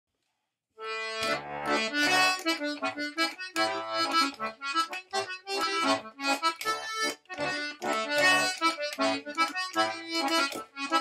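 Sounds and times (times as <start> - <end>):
button accordion playing: 0.8 - 11.0.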